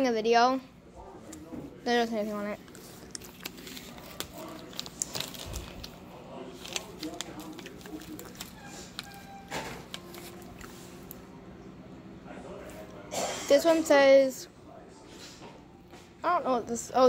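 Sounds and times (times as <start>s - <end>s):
low steady hum: 0.0s - 17.0s
faint voices: 0.9s - 15.8s
candy bag crinkling: 2.3s - 11.2s.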